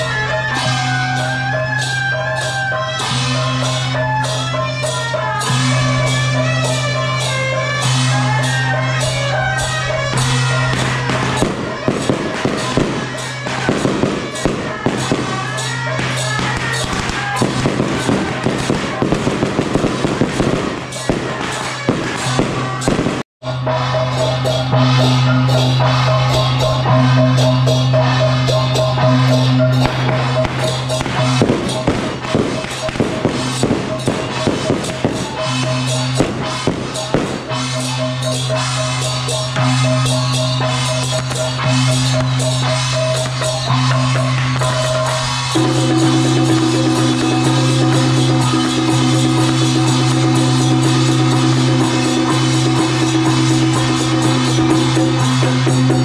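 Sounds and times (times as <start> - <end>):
firecrackers popping: 0.0 - 23.3, 28.0 - 56.0
loud music with sustained tones: 0.0 - 56.0.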